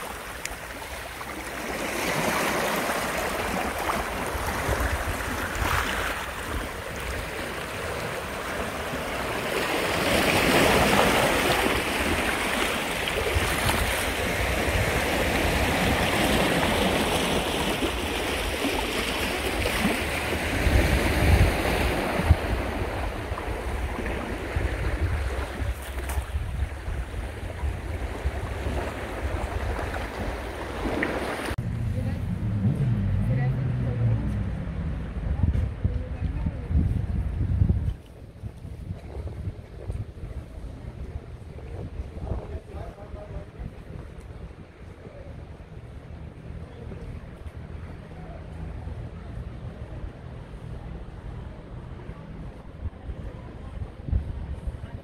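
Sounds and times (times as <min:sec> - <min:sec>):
waves washing over pebbles: 0:00.0 - 0:31.6
wind rumble on microphone: 0:19.6 - 0:55.0.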